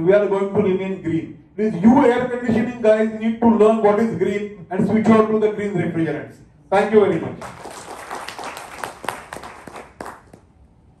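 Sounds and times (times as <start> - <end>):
audience applause: 7.4 - 10.5.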